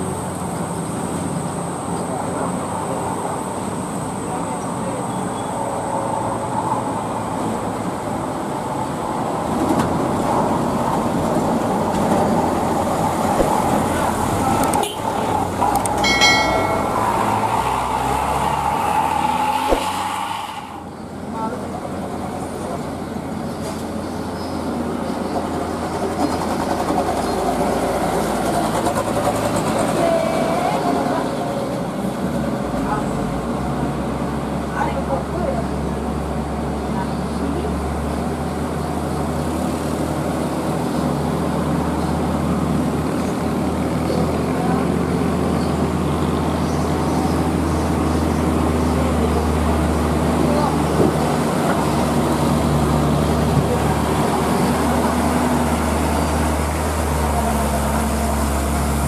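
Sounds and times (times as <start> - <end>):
diesel truck engines labouring: 0.0 - 59.0
brief high tone: 16.0 - 17.6.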